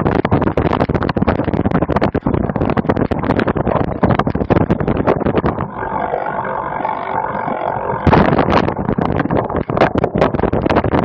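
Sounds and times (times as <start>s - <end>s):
steady droning buzz: 0.0s - 11.0s.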